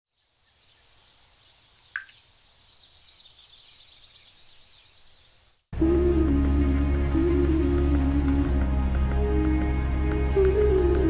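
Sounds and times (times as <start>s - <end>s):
background music: 5.8s - 11.0s.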